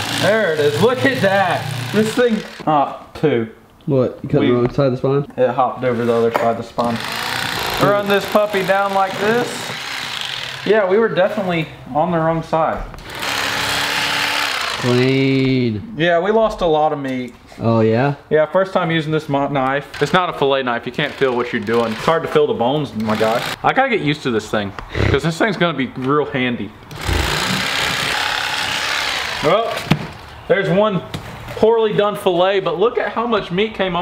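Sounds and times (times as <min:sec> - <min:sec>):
electric knife buzzing: 0:00.0 - 0:02.7, 0:06.9 - 0:10.7, 0:13.0 - 0:15.2, 0:23.0 - 0:23.6, 0:26.9 - 0:29.7.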